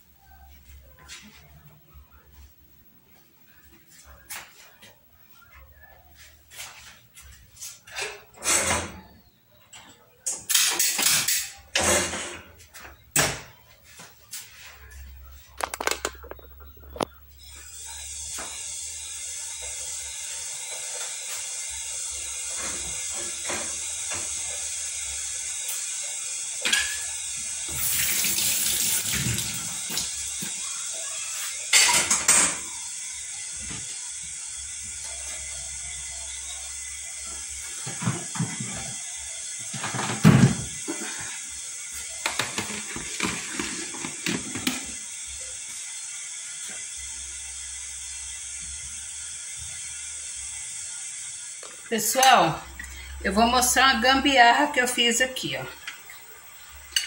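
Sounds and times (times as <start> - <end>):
utensils and dishes clattering: 7.9 - 12.6, 26.6 - 28.2, 31.4 - 32.9, 39.6 - 41.4, 42.0 - 45.0
kitchen tap running: 17.6 - 33.4, 34.1 - 57.0.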